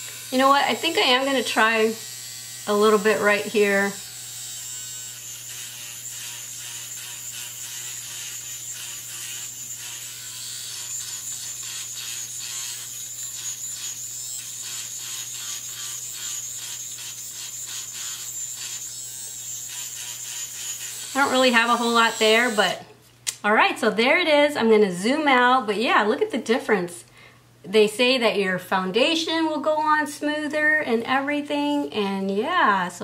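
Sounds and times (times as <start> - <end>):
small motor humming and whining: 0.0 - 22.8.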